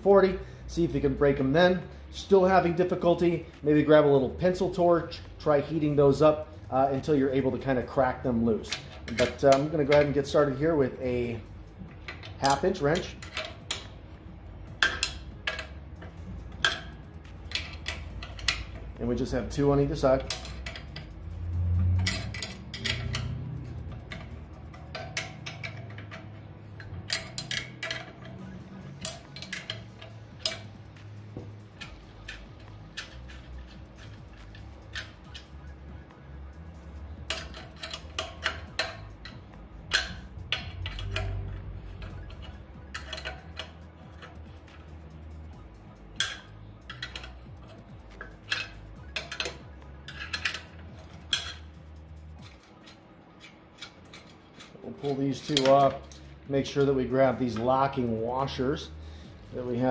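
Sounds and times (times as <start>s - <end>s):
wrench clinking against metal nuts: 0.9s - 35.7s, 36.5s - 59.9s.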